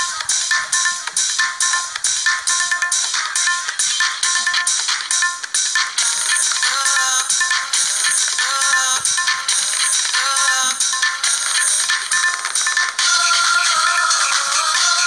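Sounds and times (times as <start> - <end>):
upbeat song with bright melody: 0.0 - 15.0.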